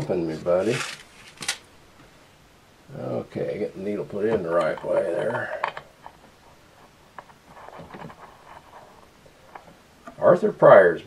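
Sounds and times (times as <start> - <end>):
soft hiss-like handling sound: 0.0 - 11.0.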